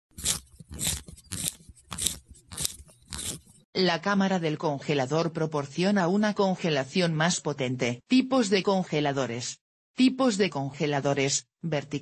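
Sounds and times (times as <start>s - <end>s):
short crunches: 0.2s - 3.6s.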